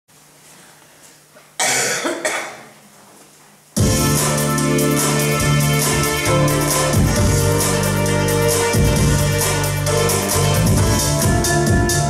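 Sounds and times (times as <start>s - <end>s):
person coughing: 1.6s - 2.8s
electronic keyboard playing: 3.8s - 12.0s.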